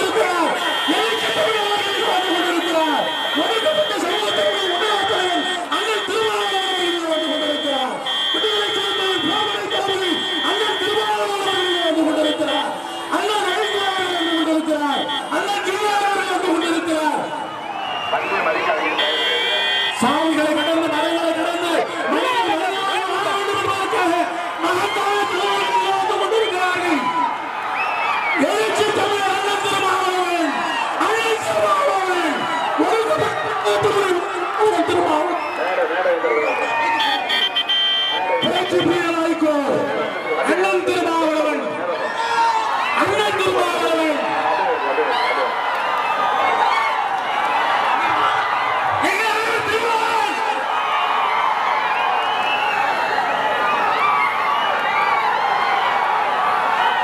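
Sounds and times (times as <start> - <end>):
crowd shouting and cheering: 0.0 - 57.0.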